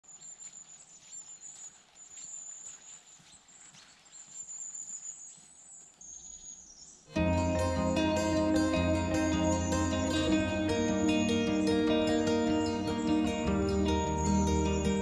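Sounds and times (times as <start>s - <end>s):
plucked string music: 7.1s - 15.0s.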